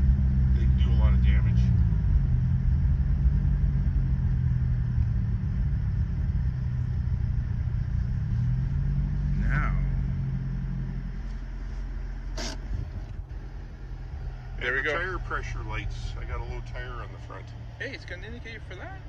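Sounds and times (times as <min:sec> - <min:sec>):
car engine and road rumble: 0:00.0 - 0:19.0.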